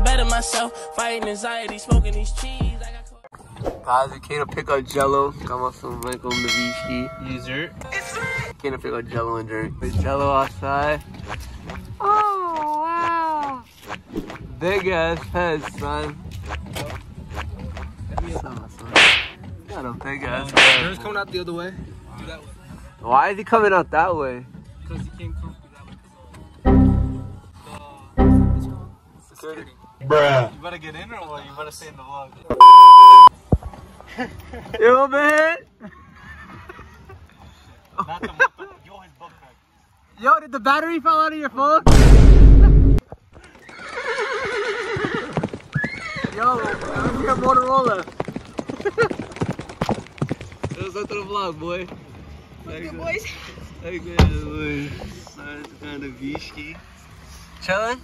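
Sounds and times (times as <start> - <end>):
swish and crack: 19.0 - 19.4, 20.5 - 21.0
horse whinnying: 43.6 - 47.2.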